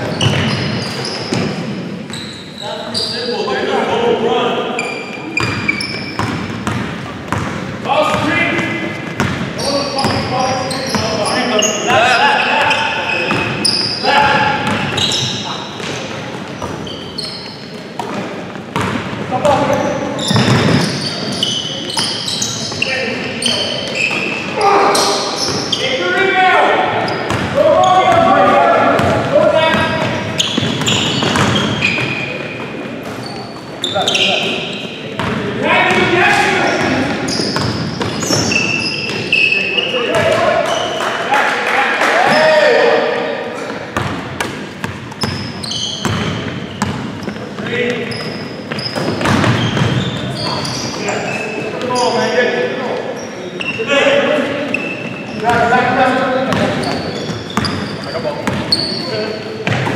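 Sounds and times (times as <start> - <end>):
basketball bouncing on hardwood: 6.2 - 8.3, 9.0 - 10.2, 20.3 - 20.8
players' voices calling out: 7.8 - 17.8, 19.3 - 43.9.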